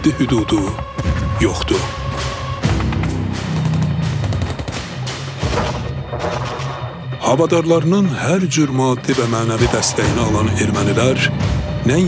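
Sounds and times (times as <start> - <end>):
dramatic music low notes: 0.0 - 12.0.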